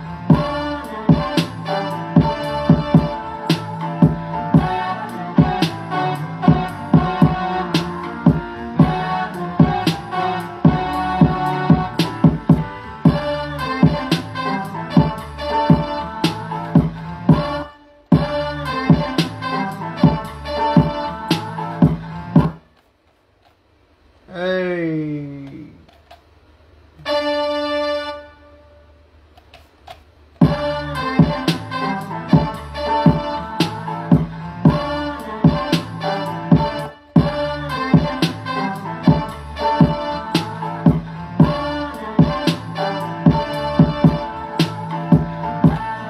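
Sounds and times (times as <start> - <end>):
hip-hop beat with music sample: 0.0 - 22.6, 30.4 - 46.0.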